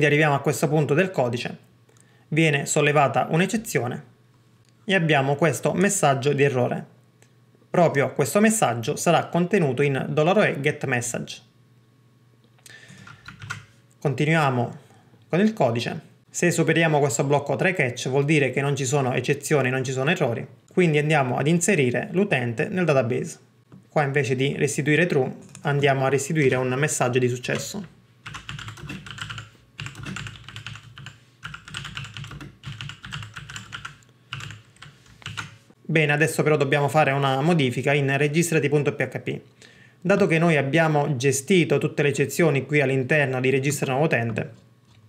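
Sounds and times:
computer keyboard keystrokes: 13.0 - 13.7, 27.5 - 35.6.

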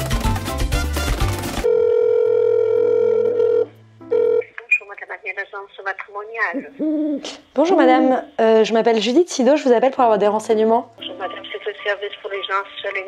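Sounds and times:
telephone ringing tone: 1.6 - 4.6
person speaking on phone: 4.5 - 8.4, 11.0 - 13.0.

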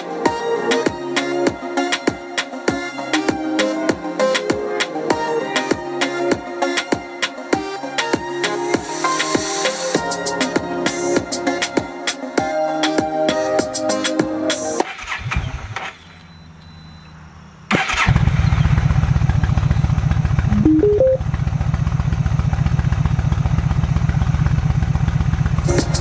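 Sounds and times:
music: 0.0 - 14.8, 20.5 - 21.2, 25.6 - 26.0
motorcycle engine idling: 18.2 - 20.5, 21.2 - 26.0
rising electronic beeps: 20.5 - 21.2.

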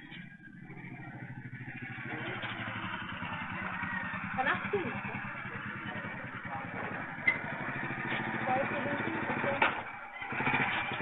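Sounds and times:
motorcycle engine approaching: 0.0 - 11.0.

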